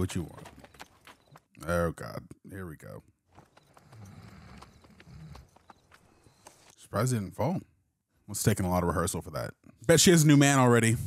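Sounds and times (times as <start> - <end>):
horse hooves clip-clop: 0.0 - 1.7, 2.8 - 6.8.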